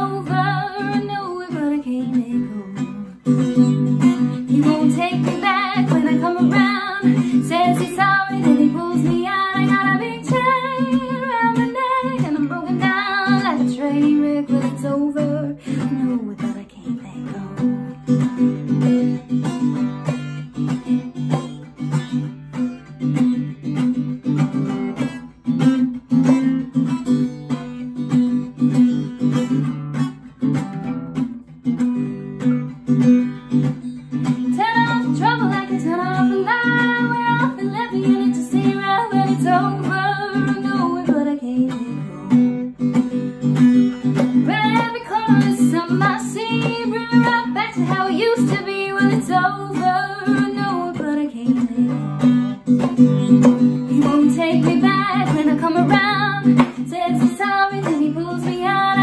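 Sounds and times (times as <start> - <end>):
woman singing wordless melody: 0.0 - 3.4, 4.3 - 18.5, 34.4 - 42.1, 44.4 - 52.3, 53.8 - 59.0
guitar strummed: 0.0 - 59.0.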